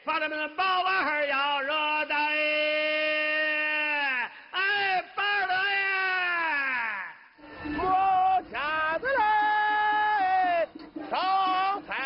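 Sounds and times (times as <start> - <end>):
man singing street cry: 0.0 - 12.0.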